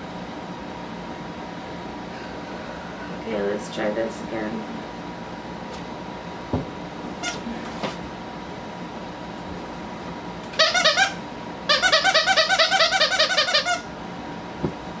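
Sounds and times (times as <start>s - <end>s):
dog toy squeaking: 10.6s - 13.9s.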